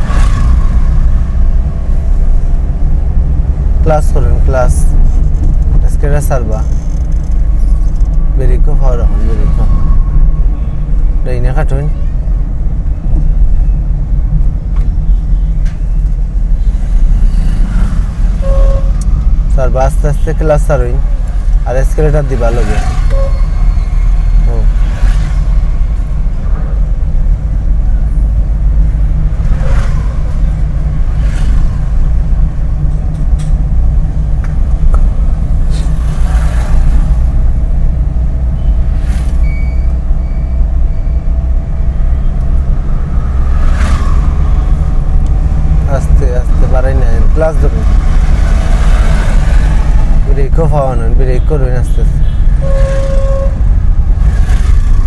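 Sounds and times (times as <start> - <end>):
car engine and road noise: 0.0 - 55.0
short high beeps: 39.4 - 41.2.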